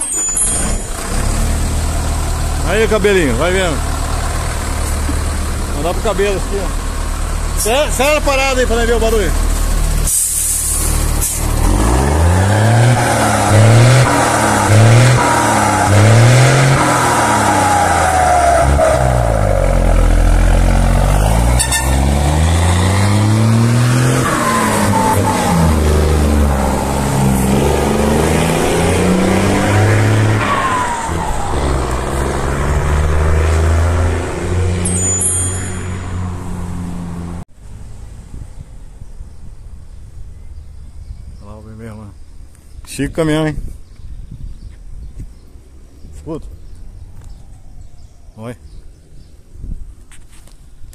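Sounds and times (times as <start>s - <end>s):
truck diesel engine pulling away: 0.4s - 35.0s
turbocharger whistle: 21.5s - 22.1s.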